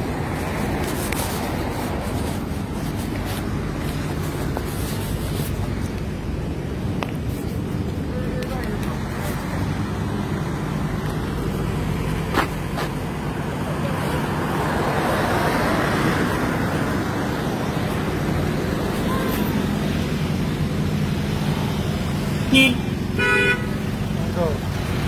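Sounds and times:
car engines idling: 0.0 - 25.0
rush of passing traffic: 0.0 - 25.0.

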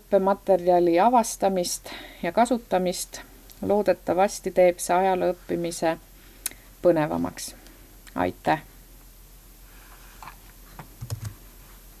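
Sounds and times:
computer mouse clicks: 11.0 - 11.4.

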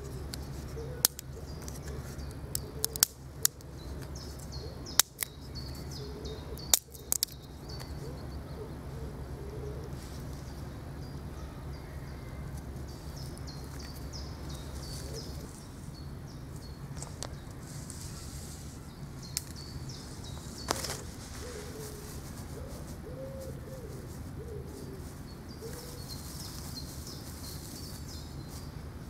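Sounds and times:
dry twigs snapping: 1.0 - 5.4, 6.6 - 7.9, 20.6 - 21.2.

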